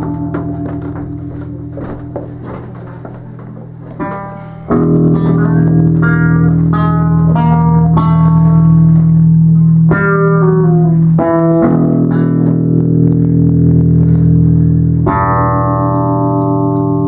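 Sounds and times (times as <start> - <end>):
plucked string notes: 0.0 - 17.0.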